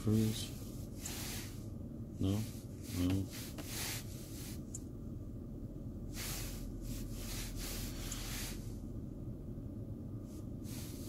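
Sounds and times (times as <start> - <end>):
car cabin hum: 0.0 - 11.0
person breathing: 0.9 - 1.6, 10.6 - 11.0.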